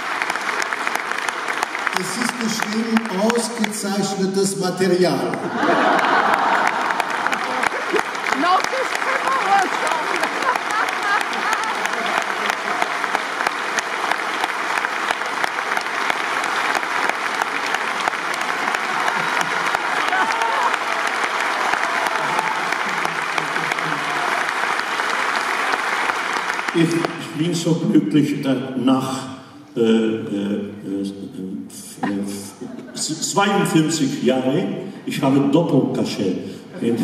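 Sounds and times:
audience applauding: 0:00.0 - 0:27.9.

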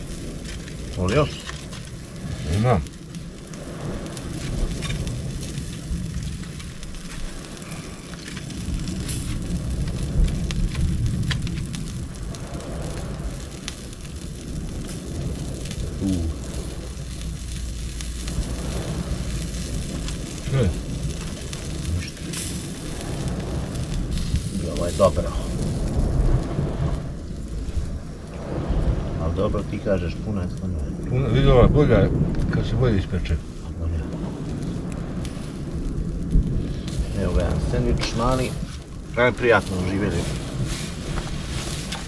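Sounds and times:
sea washing on rocks: 0:00.0 - 0:42.0
wind rumbling on microphone: 0:00.0 - 0:42.0
wood fire crackling: 0:00.0 - 0:42.0.

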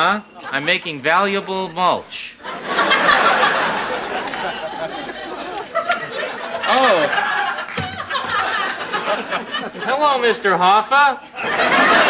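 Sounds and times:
audience chattering and laughing: 0:00.2 - 0:10.4, 0:11.2 - 0:12.0.

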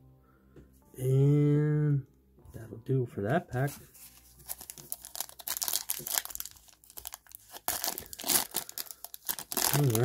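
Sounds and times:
foil wrapper crackling: 0:04.0 - 0:10.0.

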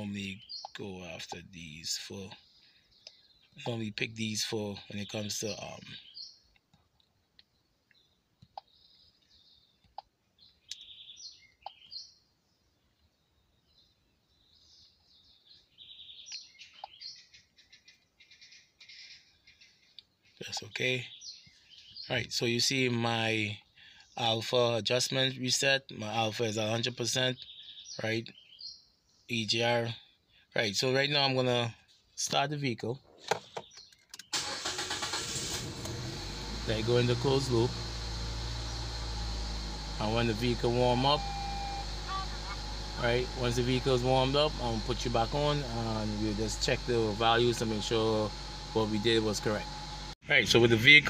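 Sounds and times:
birds chirping and trilling: 0:00.0 - 0:35.2, 0:36.5 - 0:51.0
car engine starting and running: 0:34.2 - 0:51.0.

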